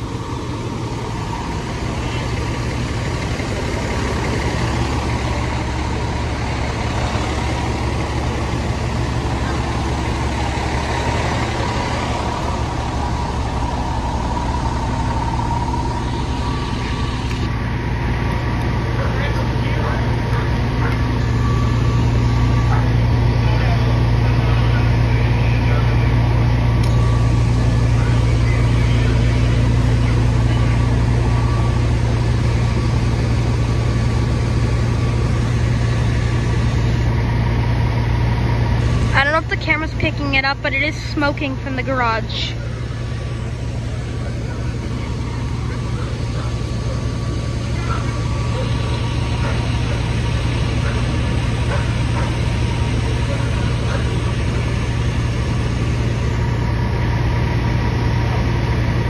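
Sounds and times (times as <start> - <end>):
diesel engine droning: 0.0 - 59.0.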